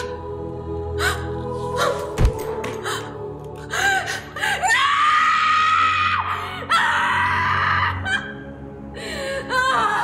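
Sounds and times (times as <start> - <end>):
dramatic film score: 0.0 - 10.0
woman sobbing: 9.1 - 10.0.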